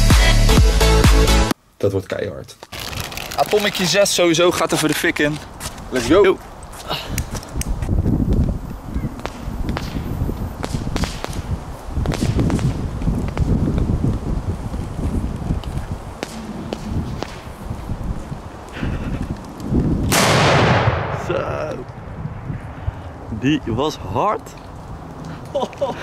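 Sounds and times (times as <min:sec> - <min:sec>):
firecracker bang: 0:09.2 - 0:11.4, 0:12.1 - 0:12.8, 0:20.0 - 0:22.8.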